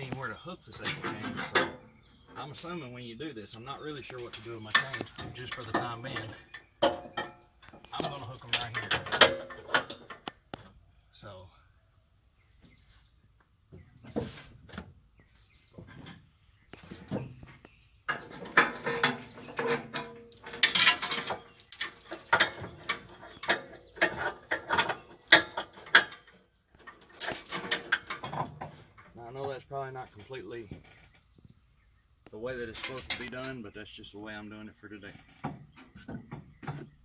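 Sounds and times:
chain links clinking on metal hitch: 8.0 - 10.1, 18.6 - 28.8.

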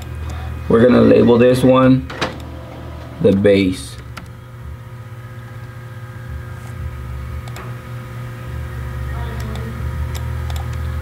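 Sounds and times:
low machine hum: 0.0 - 11.0.

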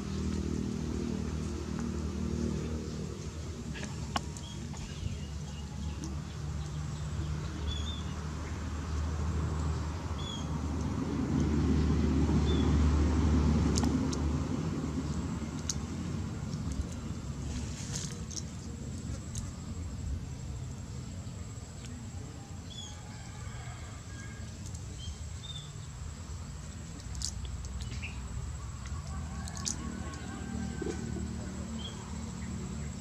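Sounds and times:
motor vehicle passing: 0.0 - 33.0.

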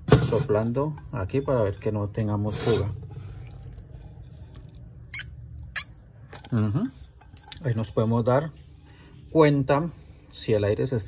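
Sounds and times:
short high squeaks: 5.0 - 6.0.

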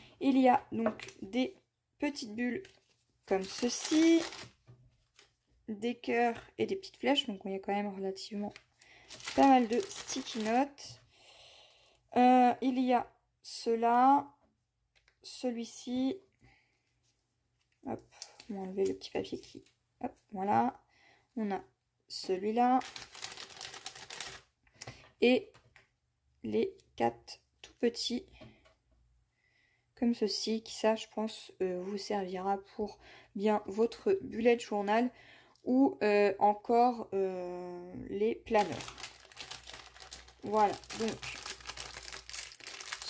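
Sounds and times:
plastic packaging crinkling: 2.6 - 5.4, 8.5 - 10.8, 22.8 - 24.5, 38.5 - 43.0.

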